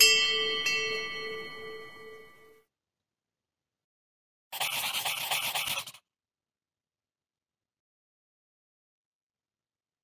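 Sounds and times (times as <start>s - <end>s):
bell-like chime: 0.0s - 2.6s.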